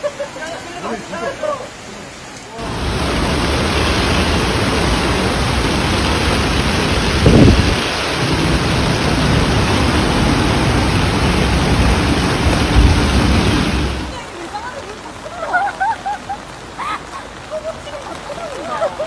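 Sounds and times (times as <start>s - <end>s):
heavy rain and floodwater running: 0.0s - 19.0s
low rumble: 2.6s - 14.2s.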